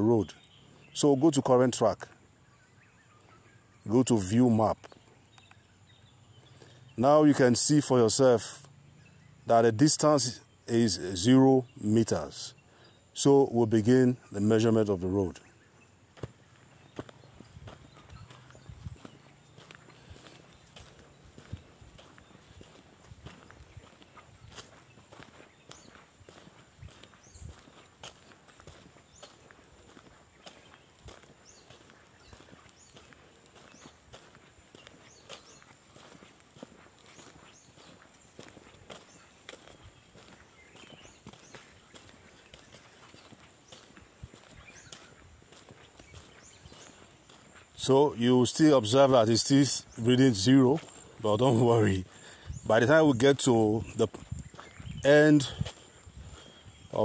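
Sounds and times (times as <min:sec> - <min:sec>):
footsteps on dirt road: 0:00.0 - 0:57.0.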